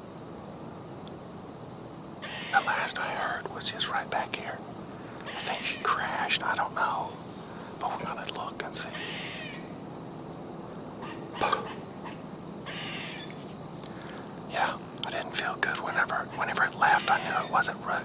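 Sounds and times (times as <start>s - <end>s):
man whispering: 2.5s - 4.6s, 5.3s - 7.2s, 7.8s - 9.0s, 11.4s - 11.8s, 14.5s - 18.0s.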